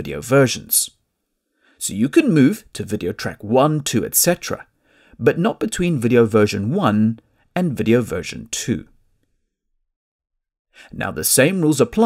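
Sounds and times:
person narrating: 0:01.8 - 0:09.0, 0:10.8 - 0:12.0.

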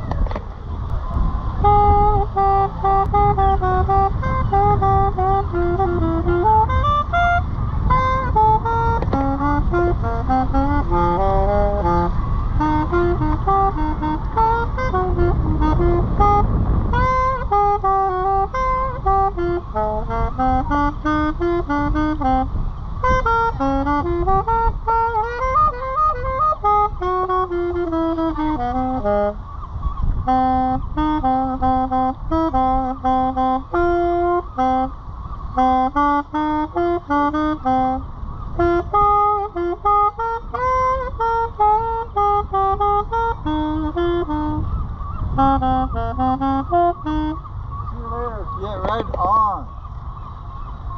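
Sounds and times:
saxophone melody: 0:00.0 - 0:49.7
low rumble: 0:00.0 - 0:50.9.

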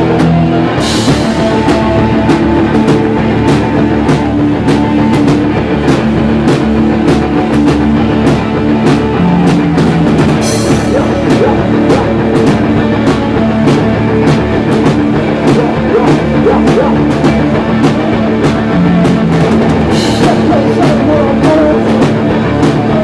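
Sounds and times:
drum kit steady beat: 0:00.0 - 0:23.0
electric bass: 0:00.0 - 0:23.0
electric guitar: 0:00.0 - 0:23.0.

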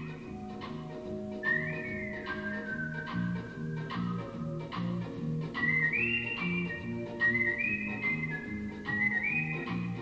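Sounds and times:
bass guitar notes: 0:00.0 - 0:10.0
clarinet: 0:00.0 - 0:10.0.

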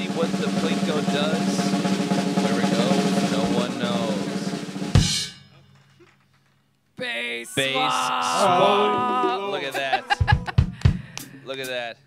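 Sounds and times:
fast snare drum roll: 0:00.0 - 0:05.3
loud ringing drum hit: 0:00.0 - 0:05.5
held instrument notes: 0:00.0 - 0:05.6.

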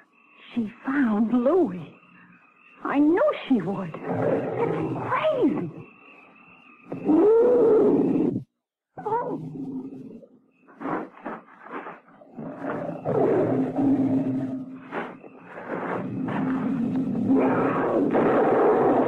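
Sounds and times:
lioness roaring and growling: 0:04.0 - 0:05.6, 0:06.9 - 0:11.0, 0:12.2 - 0:19.0.

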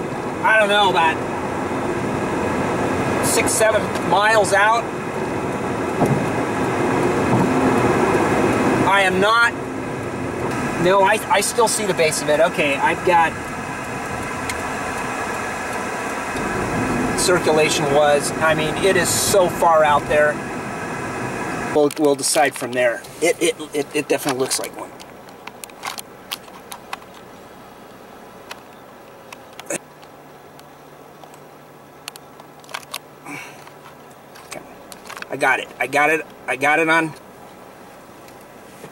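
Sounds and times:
car cabin road and engine noise: 0:00.0 - 0:38.9.

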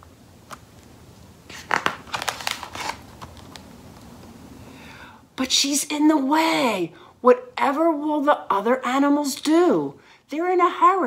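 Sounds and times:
paper page rustling: 0:00.4 - 0:03.7.

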